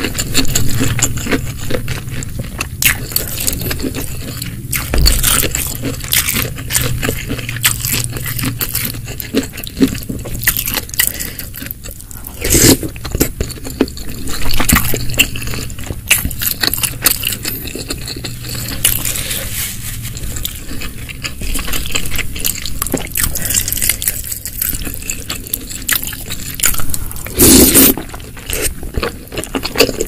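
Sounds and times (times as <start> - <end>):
close chewing with crackles: 0.0 - 30.0.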